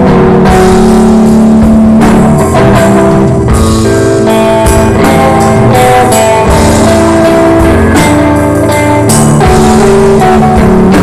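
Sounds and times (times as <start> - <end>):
distorted electric guitar: 0.0 - 11.0
drums and cymbals: 0.0 - 11.0.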